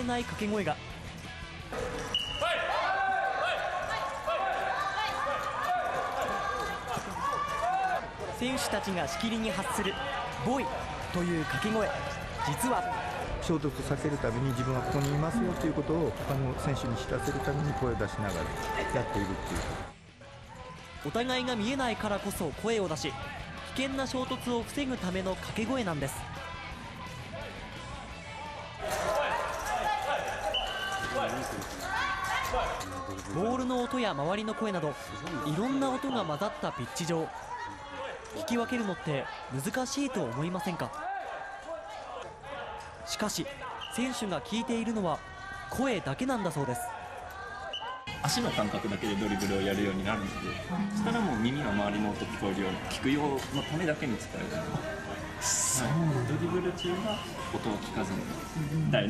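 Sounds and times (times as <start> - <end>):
players shouting: 2.1 - 15.8.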